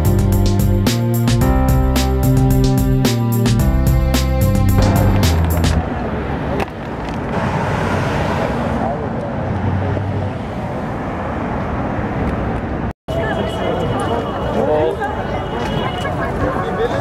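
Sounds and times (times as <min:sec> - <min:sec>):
music with steady beat: 0:00.0 - 0:05.8
cars driving past: 0:04.8 - 0:14.7
people's voices: 0:13.1 - 0:17.0.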